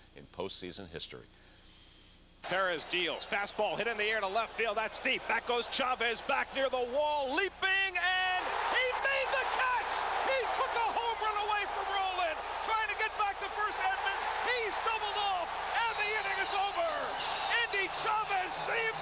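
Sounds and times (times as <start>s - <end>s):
crowd noise: 2.4s - 19.0s
man commentating excitedly: 2.4s - 19.0s.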